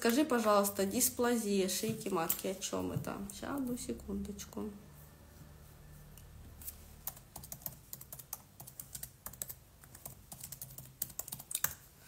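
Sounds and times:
faint low hum: 0.6 - 11.7
keyboard typing clicks: 7.0 - 11.8.

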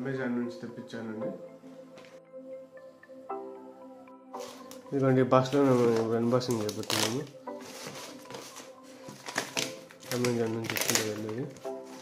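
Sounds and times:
tape ripping off cardboard: 8.1 - 11.3.

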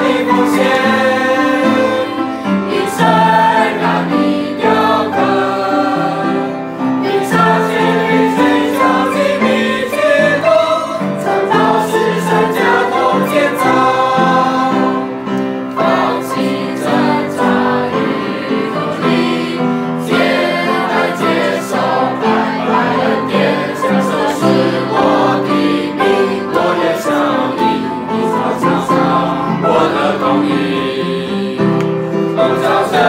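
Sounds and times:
group singing worship song: 0.0 - 33.0.

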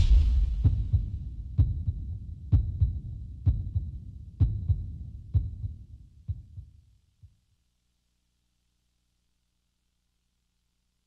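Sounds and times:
heartbeat thumps: 0.0 - 7.4.

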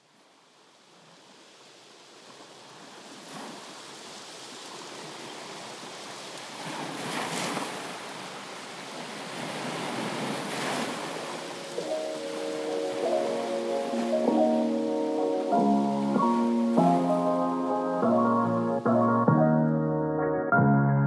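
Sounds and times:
waves washing in: 0.8 - 19.6
ocean surf: 1.0 - 19.7
music: 11.6 - 21.0.

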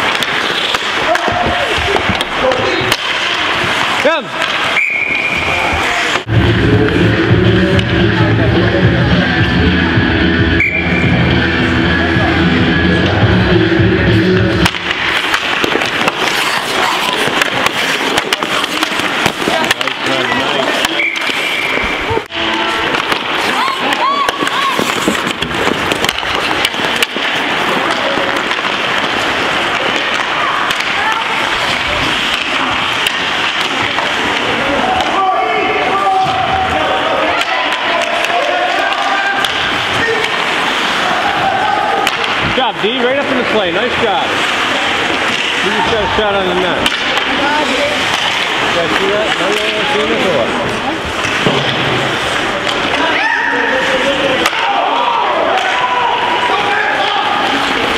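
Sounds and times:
spectators' voices: 0.0 - 57.9
music over arena speakers: 6.2 - 15.1
hockey stick and puck knocks: 14.6 - 20.1.

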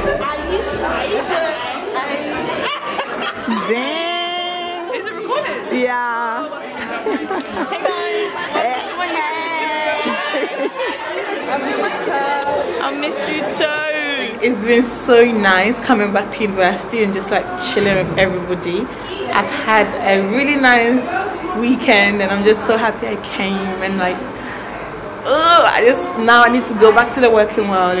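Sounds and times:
people chatting: 0.0 - 24.6, 25.2 - 28.0.

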